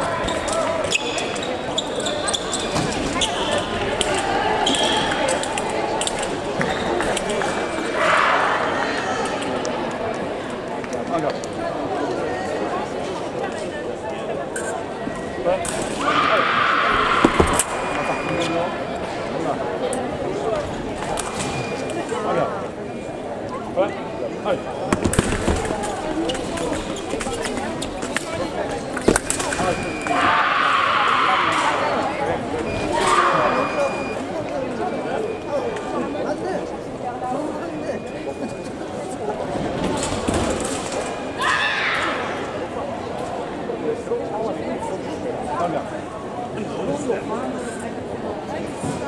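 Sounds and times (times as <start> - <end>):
indistinct voices in a hall: 0.0 - 49.0.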